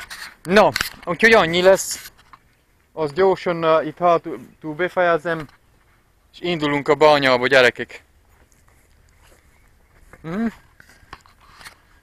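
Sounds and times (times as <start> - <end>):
man's questioning mm: 10.2 - 10.6.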